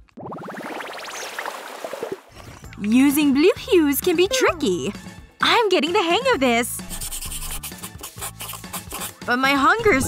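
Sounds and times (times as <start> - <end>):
background music: 2.3 - 10.0
paintbrush rubbing canvas: 6.9 - 9.2.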